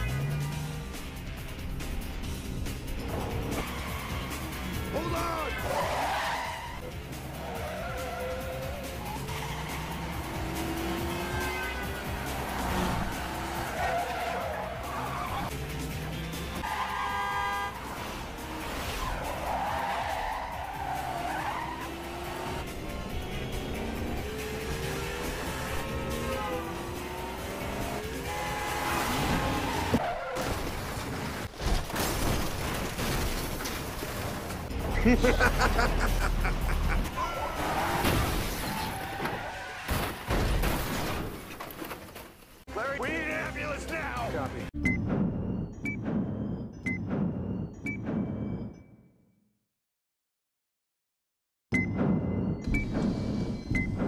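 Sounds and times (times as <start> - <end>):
tense background music: 0.0 - 31.0, 43.5 - 49.4, 51.7 - 54.0
car engines: 0.0 - 31.6, 33.8 - 40.5.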